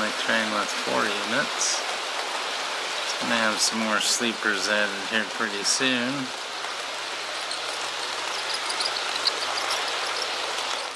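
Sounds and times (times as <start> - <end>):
model train wheels whirring: 6.6 - 10.9
small ticks: 6.8 - 10.9.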